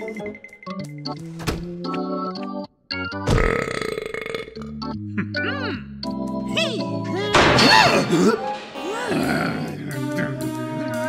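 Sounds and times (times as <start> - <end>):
cartoon background music: 0.0 - 11.0
rough vocal sound effect: 7.9 - 10.0.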